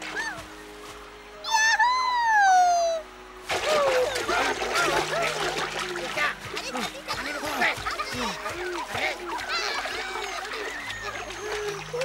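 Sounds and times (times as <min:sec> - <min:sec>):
background music: 0:00.0 - 0:12.0
splash into water: 0:03.4 - 0:12.0.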